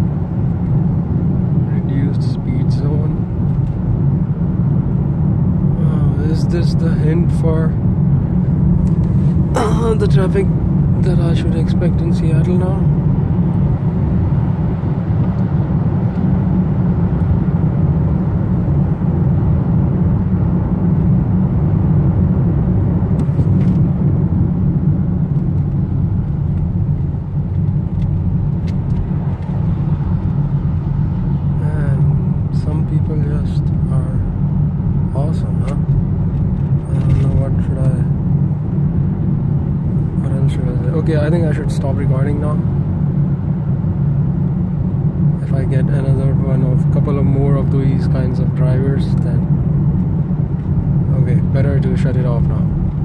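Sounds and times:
car road and engine rumble: 0.0 - 53.0.

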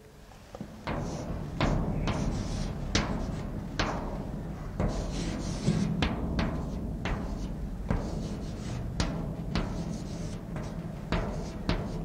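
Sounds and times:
chalk tapping blackboard: 0.6 - 12.0
chalk scratching on blackboard: 0.9 - 4.0, 4.7 - 12.0.

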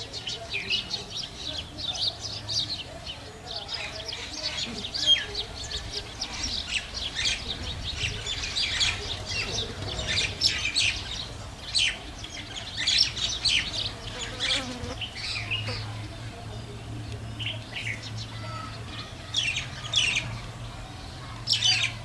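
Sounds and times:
small birds chirping: 0.0 - 22.0.

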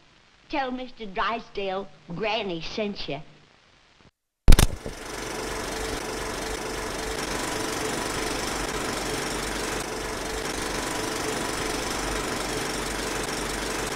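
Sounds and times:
faint constant whine: 0.0 - 13.9
film projector clatter: 4.5 - 13.9.

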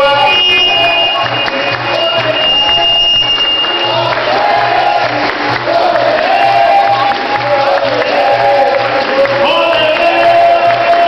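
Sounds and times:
crowd: 0.0 - 11.0
steady drum beat: 0.0 - 11.0
voices singing a melody: 3.6 - 11.0.

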